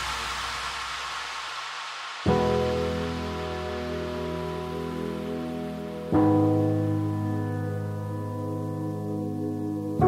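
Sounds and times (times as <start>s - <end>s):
white noise wash: 0.0s - 10.0s.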